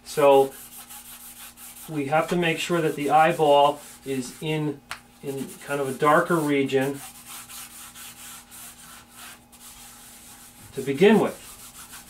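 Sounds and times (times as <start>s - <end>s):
hand rubbing charcoal on paper: 0.4s - 4.5s, 5.3s - 12.0s.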